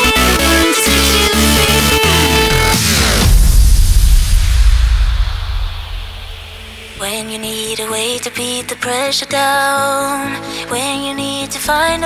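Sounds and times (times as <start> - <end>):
electronic house music: 0.0 - 8.6.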